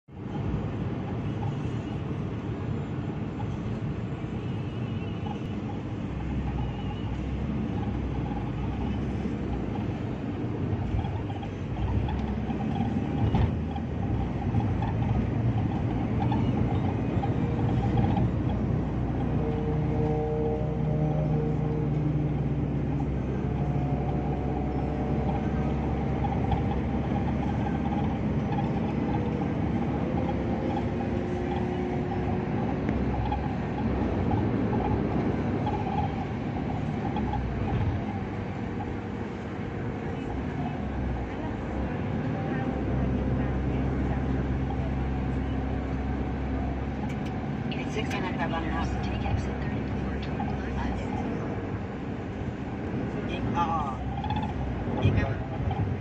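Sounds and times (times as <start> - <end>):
car road and engine drone: 0.0 - 56.0.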